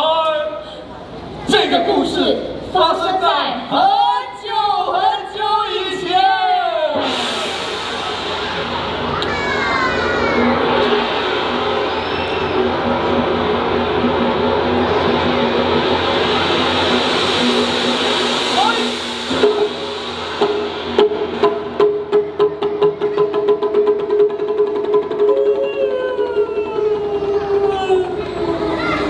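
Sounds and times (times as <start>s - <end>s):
steady low tones: 6.7s - 29.0s
drum strikes: 6.8s - 29.0s
rushing hiss: 7.0s - 22.6s
falling vocal glides: 25.2s - 29.0s.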